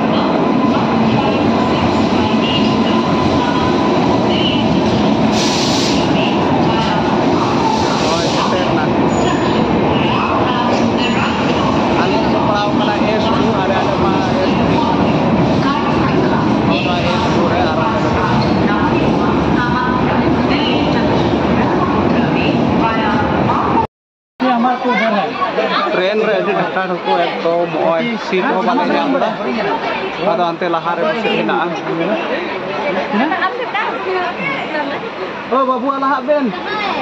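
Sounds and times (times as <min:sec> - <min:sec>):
people talking: 0:00.0 - 0:05.0, 0:06.0 - 0:37.0
train coaches rumbling past: 0:00.0 - 0:23.9
indistinct voices: 0:00.0 - 0:35.5.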